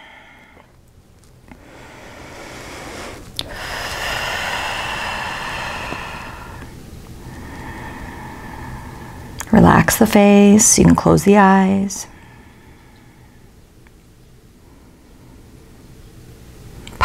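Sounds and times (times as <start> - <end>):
woman breathing close to microphone: 0.0 - 0.8, 1.5 - 9.4, 12.1 - 13.6.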